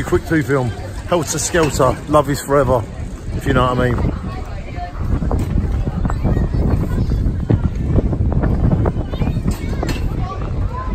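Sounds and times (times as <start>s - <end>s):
wind rumble on microphone: 0.0s - 10.9s.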